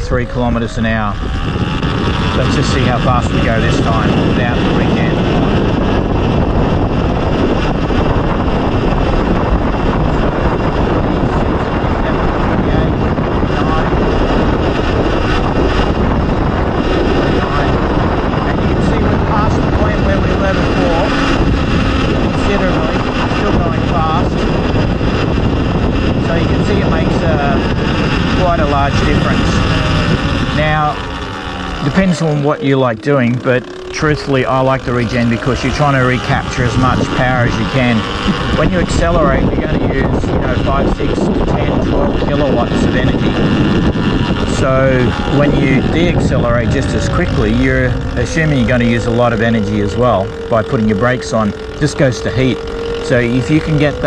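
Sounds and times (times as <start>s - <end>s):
road noise: 0.0s - 54.0s
wind rush on microphone: 0.0s - 54.0s.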